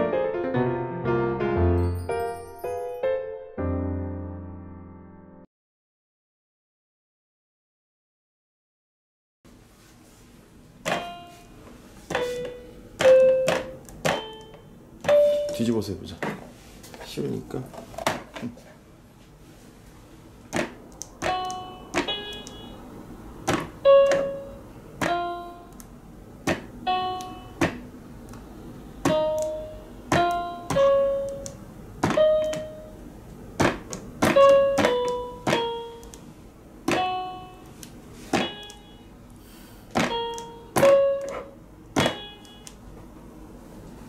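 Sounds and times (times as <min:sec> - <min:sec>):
bright electronic notes: 0:01.6 - 0:03.8.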